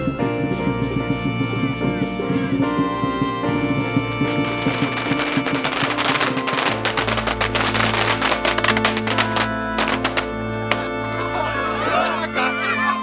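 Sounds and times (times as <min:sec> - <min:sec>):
music with long held tones: 0:00.0 - 0:13.0
firecracker string crackling: 0:03.1 - 0:11.1.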